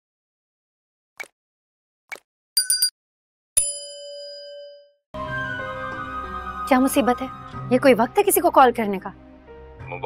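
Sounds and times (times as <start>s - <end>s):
notification bell ding: 2.6s - 2.9s.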